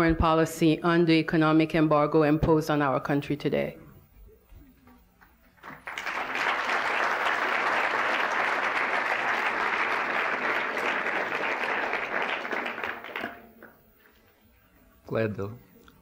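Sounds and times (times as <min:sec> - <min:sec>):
large audience applauding: 0:05.6 - 0:13.8.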